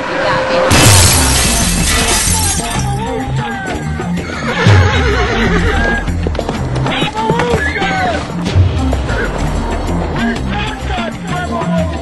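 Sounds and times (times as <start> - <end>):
loud crash: 0.6 - 2.4
horse whinnying: 4.0 - 6.2, 6.8 - 8.4
dramatic intro music: 8.1 - 12.0.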